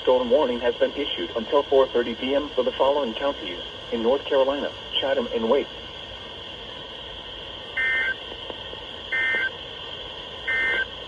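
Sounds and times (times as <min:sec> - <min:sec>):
background hiss: 0:00.0 - 0:11.0
warbling two-tone digital data bursts: 0:07.8 - 0:08.2, 0:09.1 - 0:09.5, 0:10.4 - 0:10.9.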